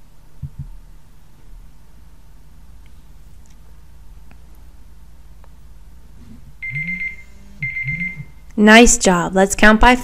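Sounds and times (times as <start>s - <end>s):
timer alarm beeping: 6.6s - 8.4s.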